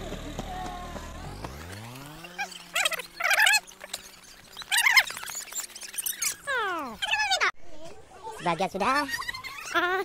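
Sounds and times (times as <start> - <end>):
motor scooter engine: 0.0 - 7.0.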